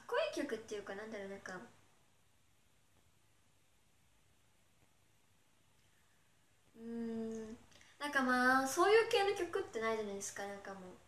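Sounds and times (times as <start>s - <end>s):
woman humming: 6.7s - 7.6s.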